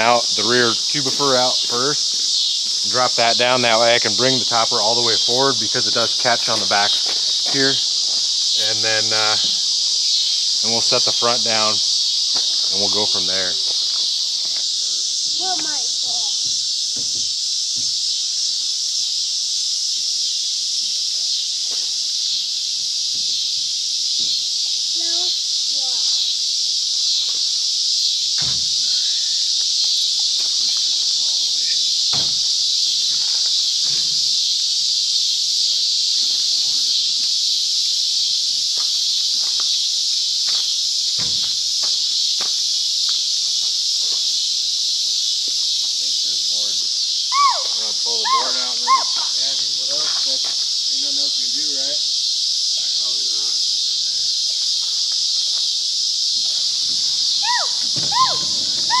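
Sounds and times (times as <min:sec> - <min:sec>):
insects buzzing: 0:00.0 - 0:59.0.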